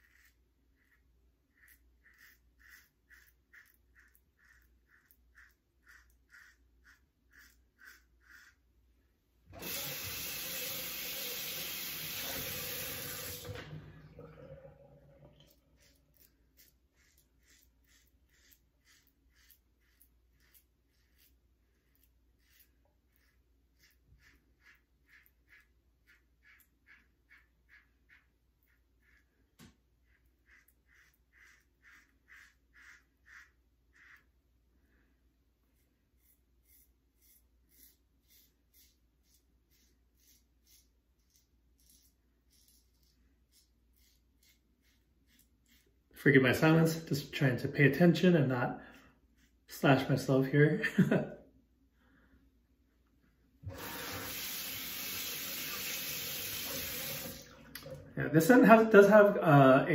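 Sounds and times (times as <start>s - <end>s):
razor scraping stubble: 0.0s - 8.9s, 15.4s - 34.5s, 35.7s - 50.4s
running water: 9.5s - 16.3s, 53.6s - 59.1s.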